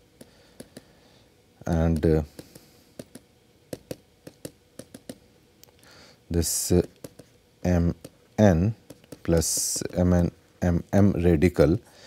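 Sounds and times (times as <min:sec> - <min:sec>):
stylus tapping on tablet: 0:00.2 - 0:00.9, 0:01.9 - 0:05.2, 0:06.8 - 0:07.3, 0:08.0 - 0:08.2, 0:08.8 - 0:10.0.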